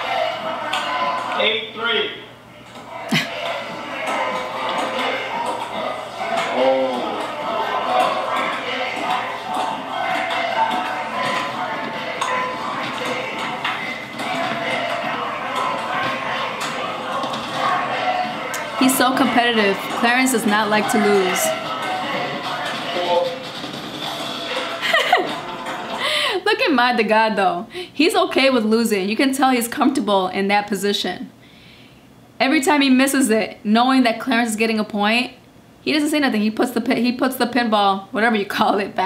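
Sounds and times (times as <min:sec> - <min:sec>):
background music: 0:00.0 - 0:27.6
background voices: 0:00.0 - 0:27.9.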